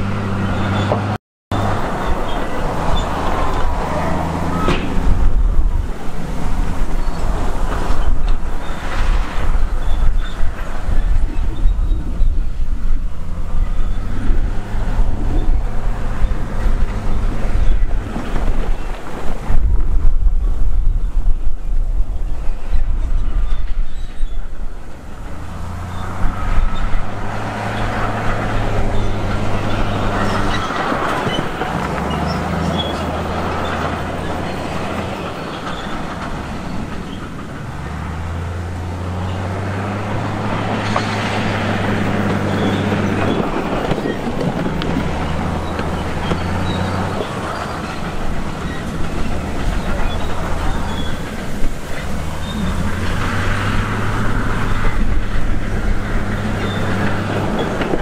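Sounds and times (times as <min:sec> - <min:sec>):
bulldozer diesel engine running: 0:00.0 - 0:58.0
wind rumbling on microphone: 0:00.0 - 0:58.0.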